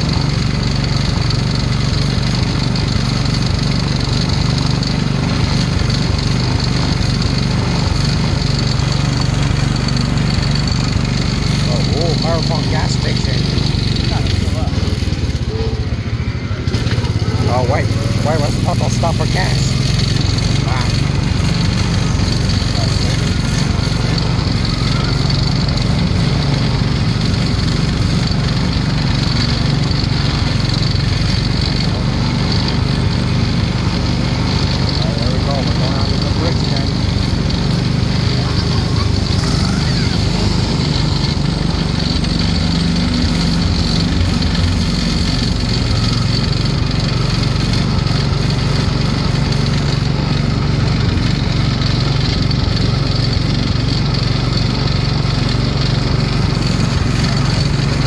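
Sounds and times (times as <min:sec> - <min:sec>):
small gasoline engine running: 0:00.0 - 0:58.0.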